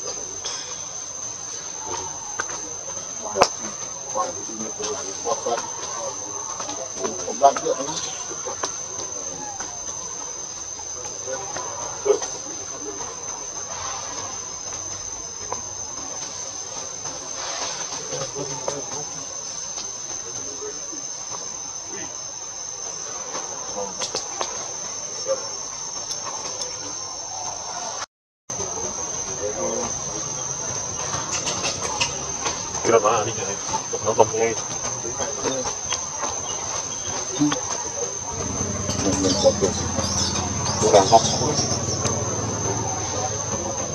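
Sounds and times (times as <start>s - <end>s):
insects buzzing high-pitched: 0.0s - 43.9s.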